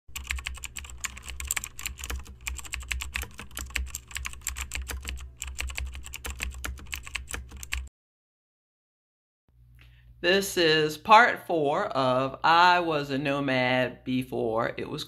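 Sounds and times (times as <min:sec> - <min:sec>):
keyboard typing clicks: 0:00.1 - 0:07.9.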